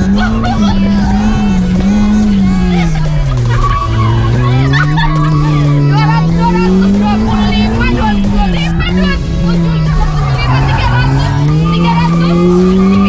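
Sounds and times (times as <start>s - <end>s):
car engine revving: 0.0s - 13.0s
tyres squealing: 0.0s - 13.0s.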